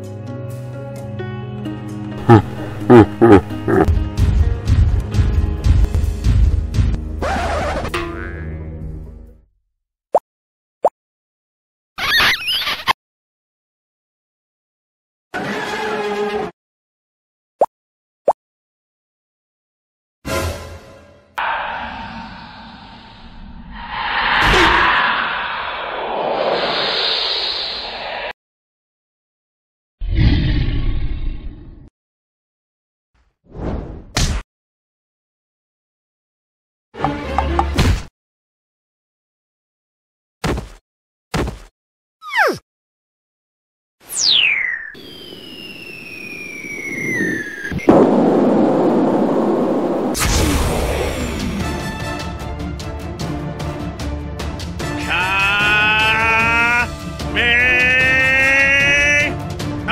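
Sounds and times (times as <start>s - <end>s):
background music: 0.0s - 9.4s, 51.2s - 59.9s
cartoon creature cries: 2.3s - 3.9s, 55.0s - 59.3s.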